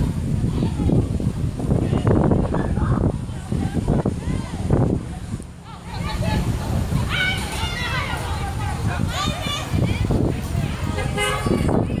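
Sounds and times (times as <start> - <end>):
young people shouting and talking: 0.0 - 12.0.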